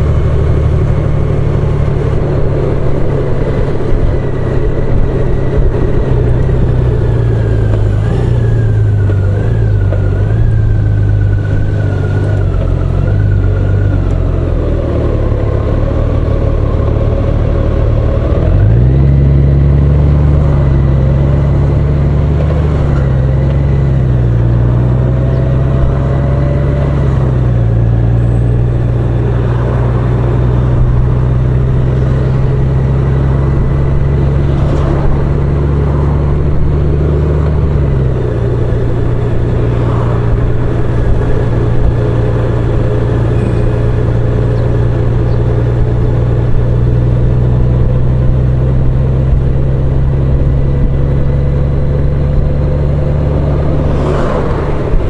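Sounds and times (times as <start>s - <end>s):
motorcycle engine running: 0.0s - 55.0s
wind and road noise: 0.0s - 55.0s.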